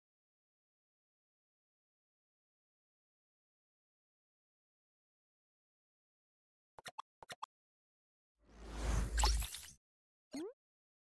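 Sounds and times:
whoosh: 0:08.5 - 0:09.3.

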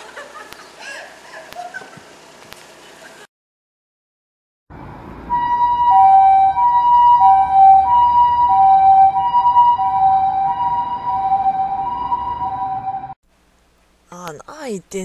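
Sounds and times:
two-tone ambulance siren: 0:05.3 - 0:13.2.

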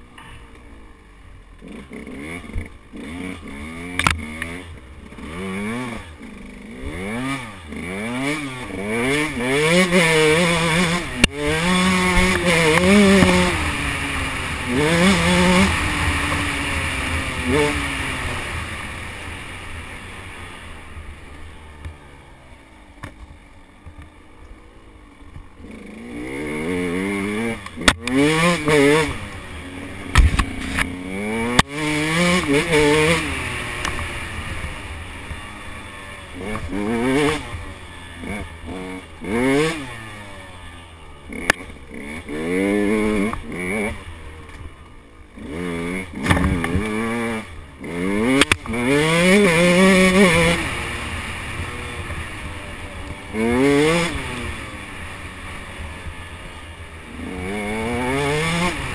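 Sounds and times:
dirt bike engine revving: 0:00.0 - 0:58.9.

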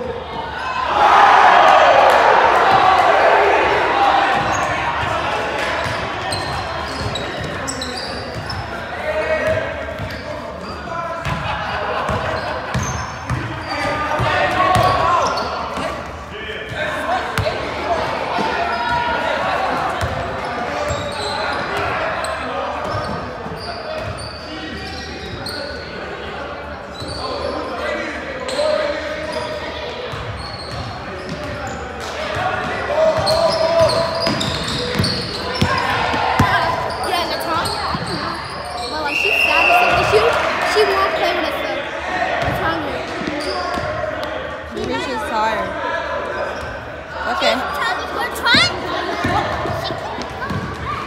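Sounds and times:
basketball bouncing on gym floor: 0:49.2 - 0:51.0.

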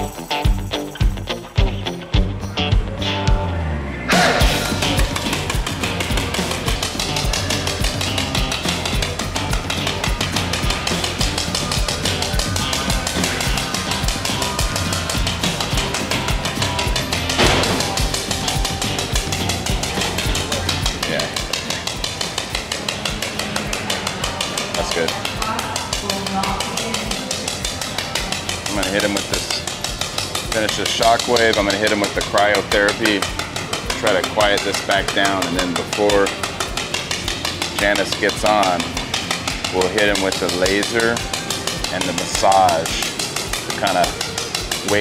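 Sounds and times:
background music with steady beat: 0:00.0 - 0:45.0.

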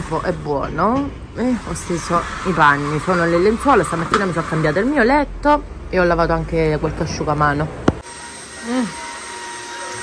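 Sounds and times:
floor washer motor whine: 0:00.0 - 0:05.2.

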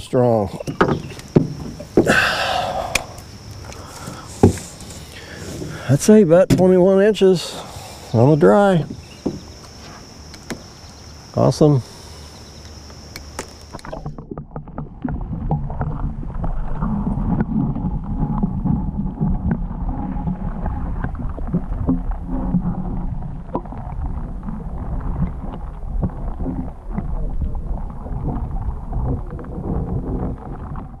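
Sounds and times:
small underwater clicks and knocks: 0:00.5 - 0:02.1, 0:02.9 - 0:05.8, 0:08.7 - 0:10.9, 0:12.6 - 0:31.0
muffled underwater rumble and slosh: 0:02.6 - 0:06.9, 0:13.6 - 0:31.0.

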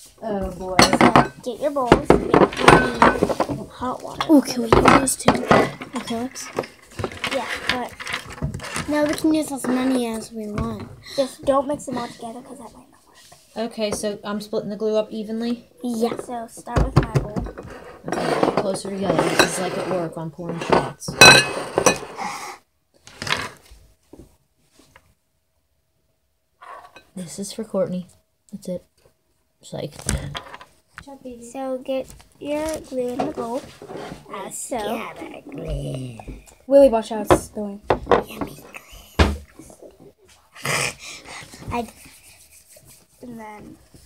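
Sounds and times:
glass bowls clinking: 0:00.8 - 0:01.4, 0:02.4 - 0:03.4, 0:18.2 - 0:20.0, 0:20.6 - 0:22.2
faint rubbing: 0:31.5 - 0:35.4, 0:39.8 - 0:44.0
child murmuring: 0:34.3 - 0:36.4.

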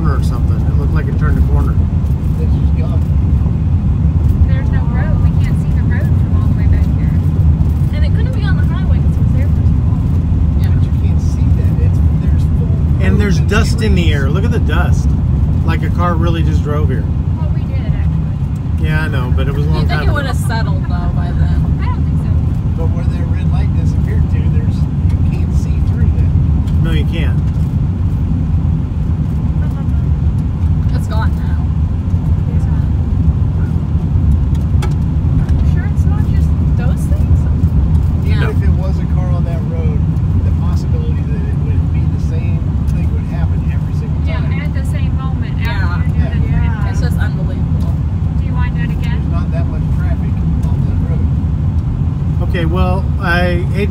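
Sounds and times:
car interior engine rumble: 0:00.0 - 0:53.9.

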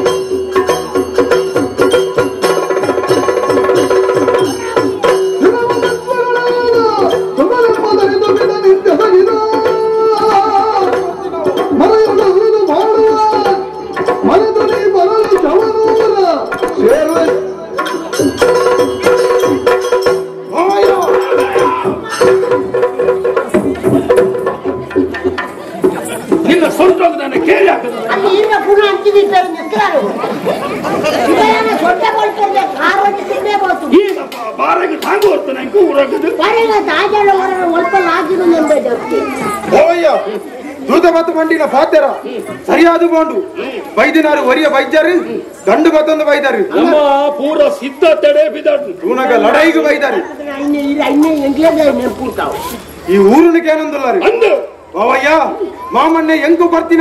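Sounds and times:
ringing bells: 0:00.0 - 0:25.0
voices talking over one another: 0:25.8 - 0:57.0.

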